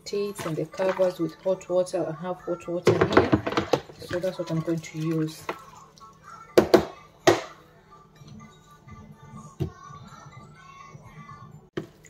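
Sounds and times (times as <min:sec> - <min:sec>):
faint background music: 0:00.0 - 0:12.0
bottle brush knocking on plastic: 0:02.8 - 0:04.4.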